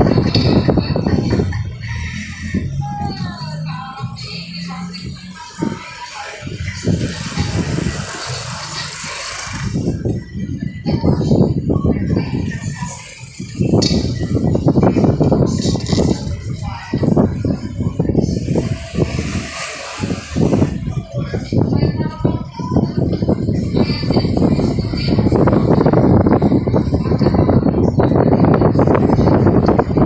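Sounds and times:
car road and engine noise: 0.0s - 30.0s
indistinct voices: 0.0s - 30.0s
rumbling on microphone: 6.4s - 30.0s.

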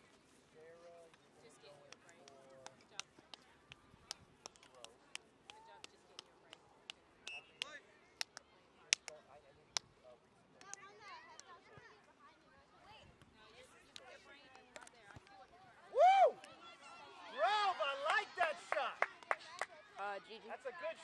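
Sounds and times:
sharp clicks and taps: 1.9s - 9.9s, 10.6s - 11.5s.

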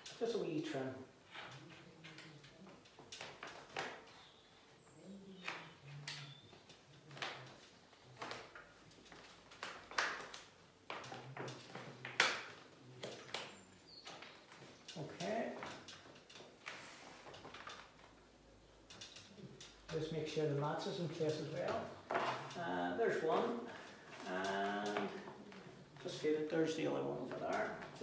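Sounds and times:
wallpaper rustling and scraping: 0.0s - 28.0s.

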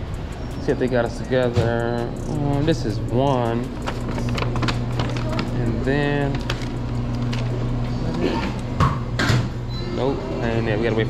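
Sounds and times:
low hum: 0.0s - 10.9s
rustling of handled things: 1.4s - 8.2s.

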